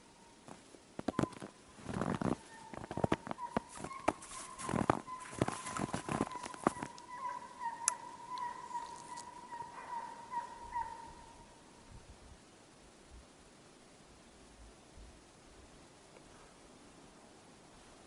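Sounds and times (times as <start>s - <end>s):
distant hounds baying: 2.2s - 11.6s.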